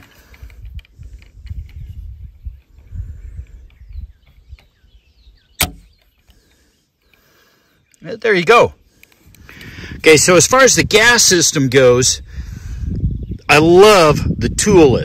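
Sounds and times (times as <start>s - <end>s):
sharp trigger click: 5.6s - 5.9s.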